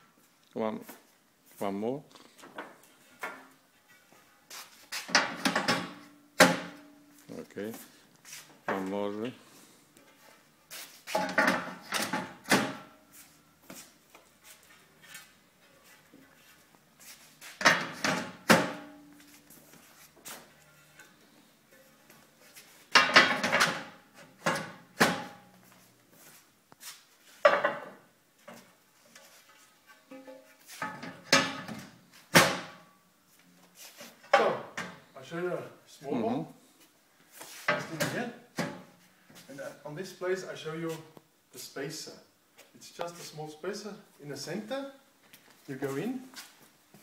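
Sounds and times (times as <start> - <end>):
ceramic panels clattering into rails: 22.9 - 25.4.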